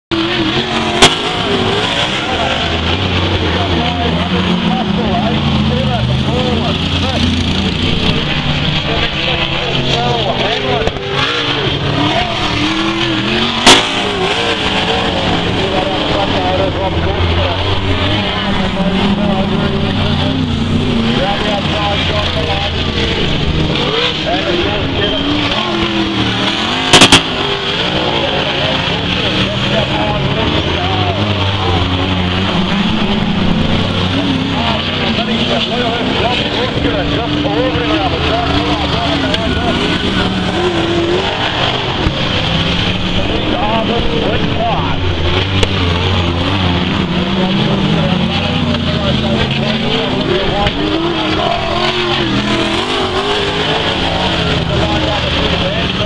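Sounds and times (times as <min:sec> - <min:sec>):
race car engines revving: 0:00.1 - 0:56.0.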